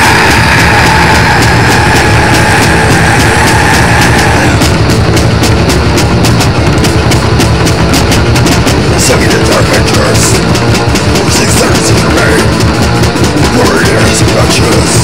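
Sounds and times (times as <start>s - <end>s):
loud metal music: 0.0s - 15.0s
rapid drum hits: 0.0s - 15.0s.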